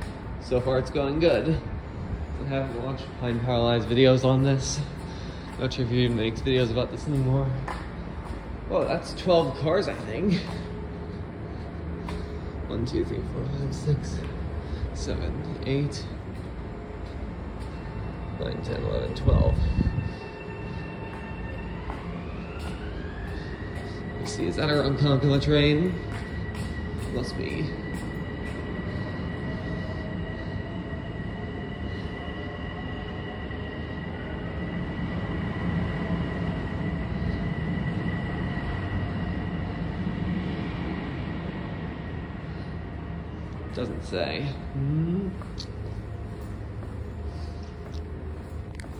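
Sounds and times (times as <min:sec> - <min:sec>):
high steady whine: 0:00.0 - 0:48.9
train rumbling on tracks: 0:00.0 - 0:48.9.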